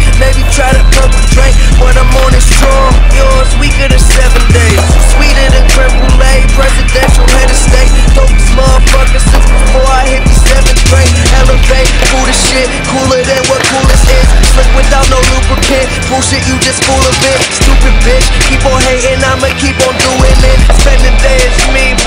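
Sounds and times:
hip-hop backing track: 0.0 - 22.0
skateboard clacking: 0.2 - 22.0
skateboard rolling on concrete: 0.2 - 22.0.

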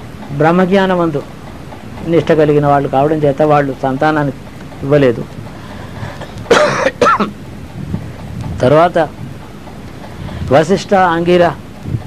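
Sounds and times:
man coughing: 6.5 - 7.4.

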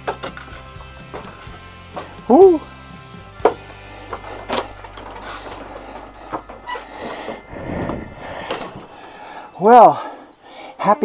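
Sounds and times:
rustling movement: 3.6 - 10.4.

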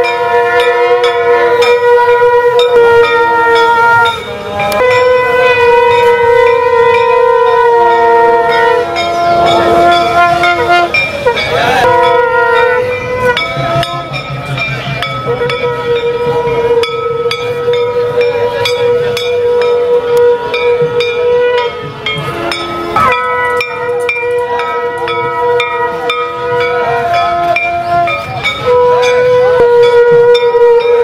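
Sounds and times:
hand bells clanging: 0.0 - 7.7, 8.4 - 31.0
conch shell blasts: 0.0 - 14.3, 15.1 - 31.0.

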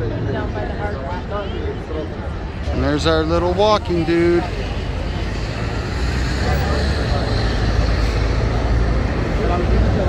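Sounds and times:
chatter of passers-by: 0.0 - 10.0
low rumble of traffic: 0.0 - 10.0.

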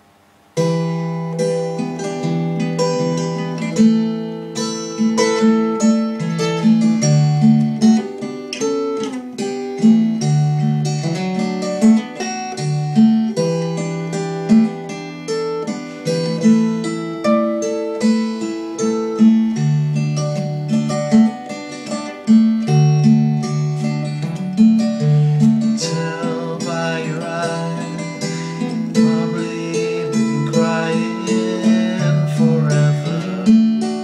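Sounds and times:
acoustic guitar picked chords: 0.0 - 34.0.

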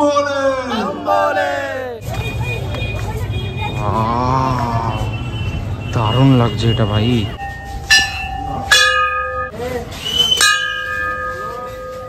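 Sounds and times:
temple bell ringing: 7.4 - 9.6, 10.4 - 12.0.

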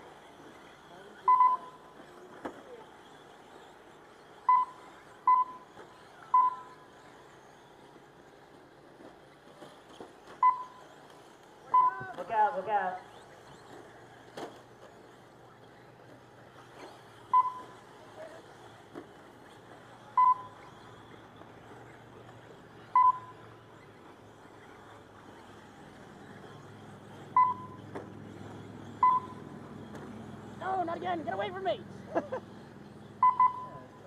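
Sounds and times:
faint outdoor background: 0.0 - 34.0
short electronic beeps: 1.2 - 1.9, 4.4 - 6.9, 10.4 - 11.0, 11.7 - 12.1, 17.3 - 17.8, 20.1 - 20.8, 22.9 - 23.4, 27.3 - 27.9, 28.9 - 29.5, 33.1 - 34.0.

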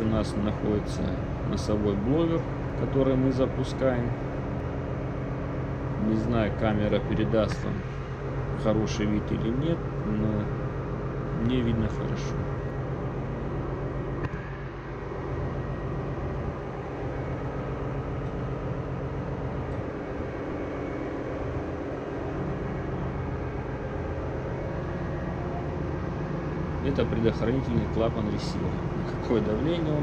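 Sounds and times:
engine-room machinery drone: 0.0 - 30.0.

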